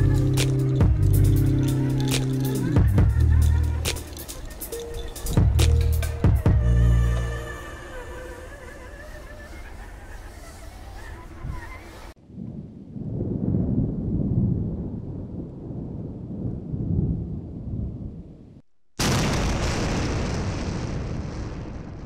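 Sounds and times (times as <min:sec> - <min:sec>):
low rumbling: 0:00.0 - 0:08.6
loud explosion-like blast: 0:19.0 - 0:22.0.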